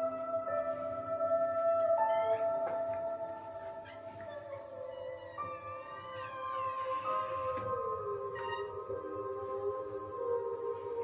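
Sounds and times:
wordless singing voice: 0.0 - 11.0.

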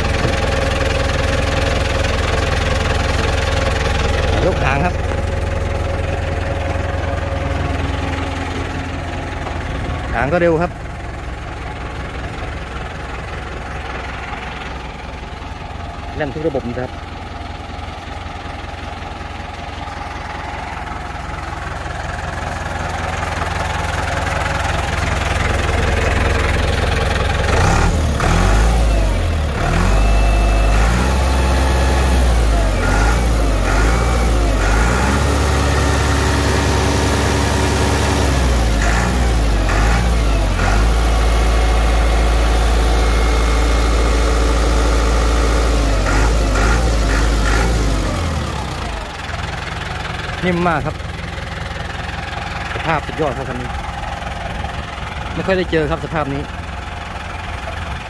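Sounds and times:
tractor diesel engine revving: 0.0 - 58.0.

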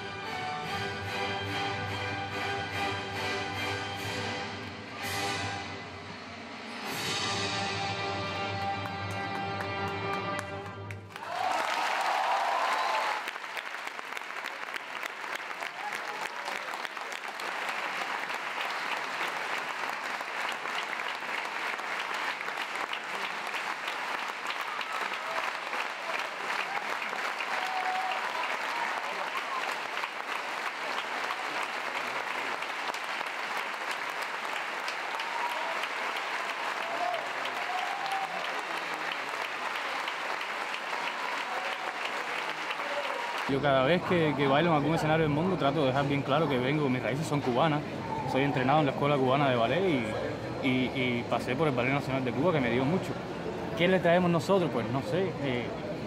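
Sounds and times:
audience applauding: 8.6 - 47.4.

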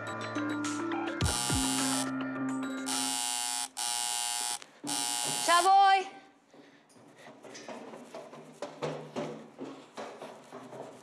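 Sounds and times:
door buzzer: 1.2 - 2.1, 2.9 - 5.8
woman calling out: 5.4 - 6.2.

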